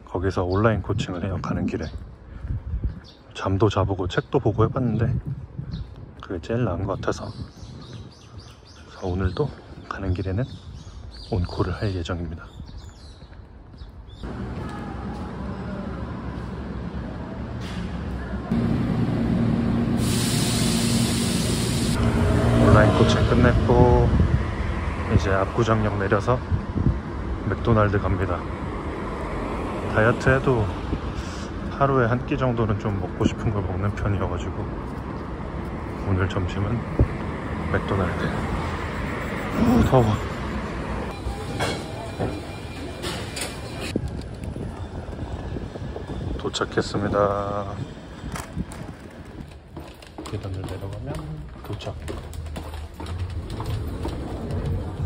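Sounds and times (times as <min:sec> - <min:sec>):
city street traffic rumble: 0:00.0 - 0:55.0
low vehicle rumble: 0:14.2 - 0:31.7
loud air release hiss: 0:19.7 - 0:22.0.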